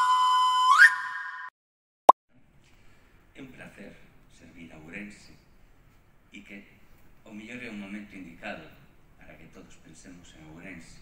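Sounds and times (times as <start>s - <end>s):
whistle-like electronic tone: 0.0s - 1.5s.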